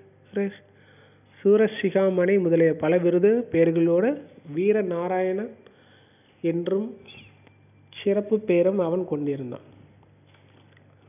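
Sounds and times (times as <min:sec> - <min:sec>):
narrator speaking: 0:00.3 - 0:00.7, 0:01.4 - 0:05.6, 0:06.4 - 0:09.8.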